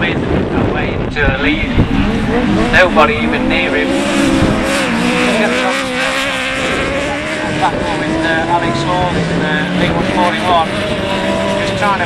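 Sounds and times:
racing engine at high revs: 0.2 - 12.0.

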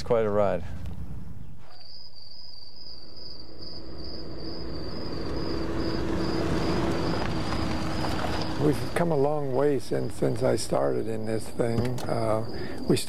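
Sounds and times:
high insect-like trill: 1.8 - 8.6.

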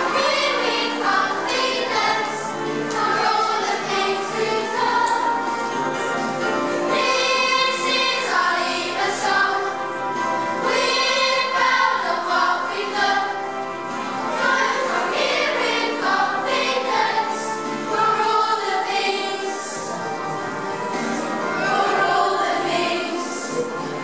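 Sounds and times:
children's choir singing: 0.0 - 24.0
musical accompaniment: 0.0 - 24.0.

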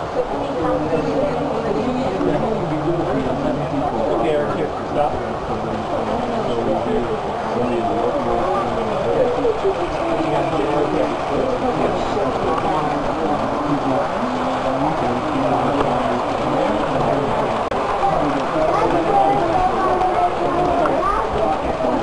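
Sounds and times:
chatter of many people: 0.0 - 22.0
model trains rumbling: 0.0 - 22.0.

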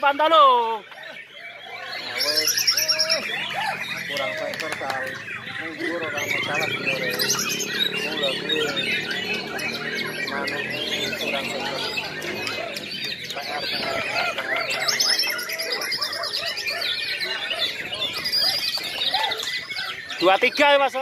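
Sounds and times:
many birds singing: 0.0 - 21.0.

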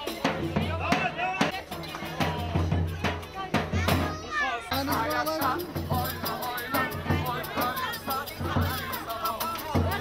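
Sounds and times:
festive music with drum beat: 0.0 - 10.0
lively crowd voices: 0.0 - 10.0.

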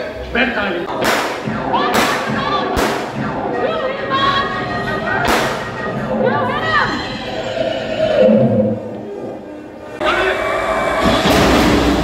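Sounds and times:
blank gunshots: 0.9 - 3.4.

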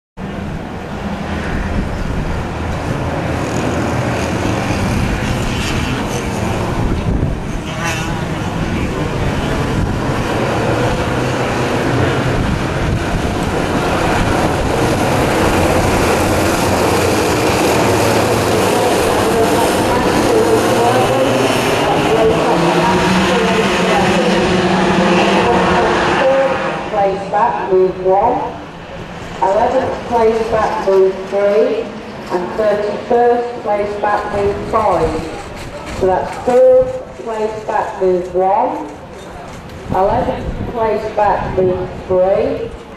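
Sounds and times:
racing kart engines: 0.2 - 42.9.

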